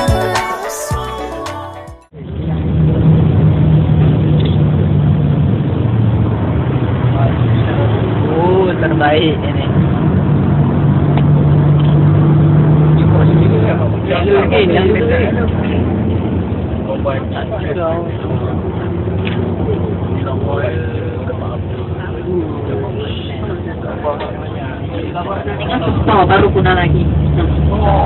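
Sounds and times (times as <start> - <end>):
bus engine drone and road noise: 2.1 - 28.0.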